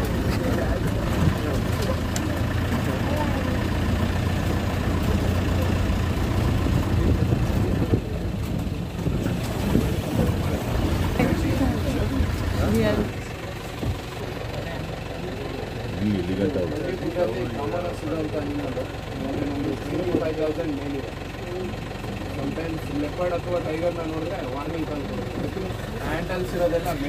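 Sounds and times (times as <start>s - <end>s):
vehicle engine rumbling: 0.0s - 27.0s.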